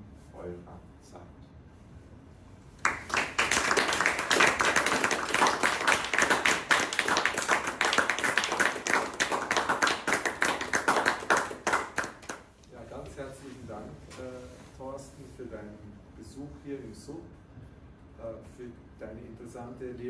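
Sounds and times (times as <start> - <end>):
audience applause: 2.8 - 12.4.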